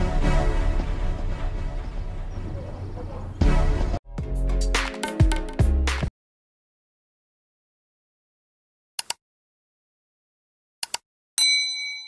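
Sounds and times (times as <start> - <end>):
mouse clicks: 9.0 - 9.2, 10.8 - 11.0.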